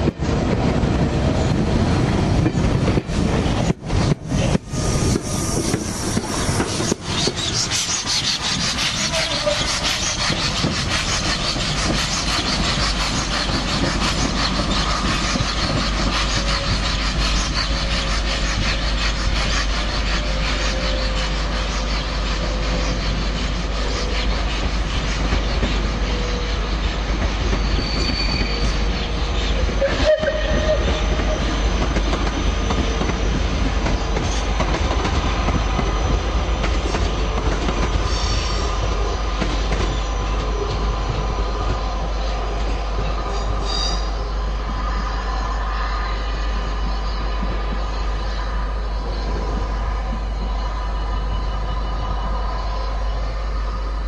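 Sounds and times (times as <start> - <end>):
train wheels on rails: 0.0 - 54.0
faint flange squeal: 27.5 - 31.8.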